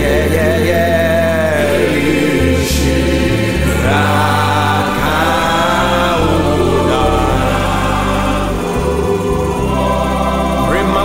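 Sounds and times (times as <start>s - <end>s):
choir singing: 0.0s - 11.0s
held bass notes: 0.0s - 11.0s.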